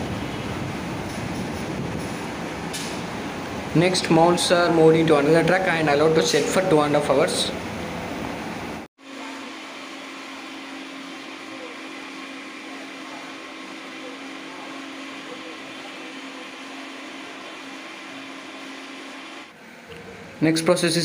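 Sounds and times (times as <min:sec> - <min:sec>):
factory machinery droning: 0:00.0 - 0:21.0.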